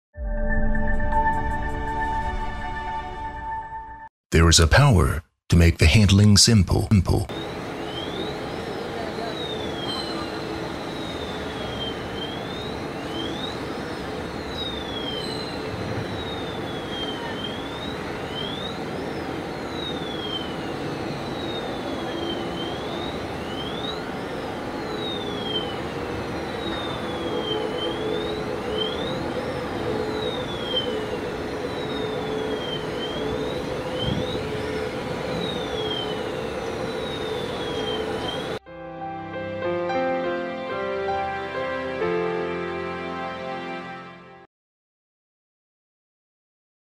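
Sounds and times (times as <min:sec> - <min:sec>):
sweeping warning siren: 0:07.3 - 0:38.6
electric cart drive hum: 0:07.4 - 0:38.6.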